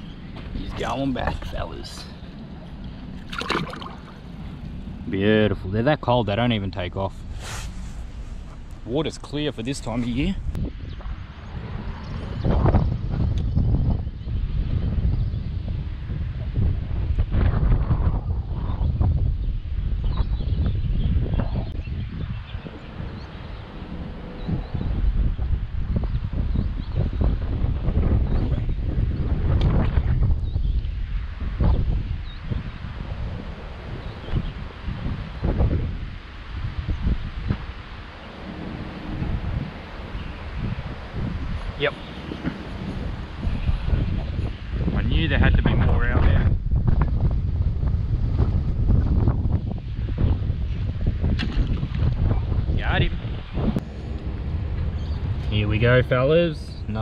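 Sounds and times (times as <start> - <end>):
gusting wind buffeting microphone: 0.0 - 57.0.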